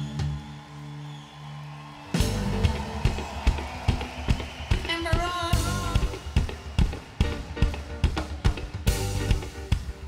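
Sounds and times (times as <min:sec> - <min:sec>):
live band playing: 0:00.0 - 0:00.8, 0:01.9 - 0:10.0.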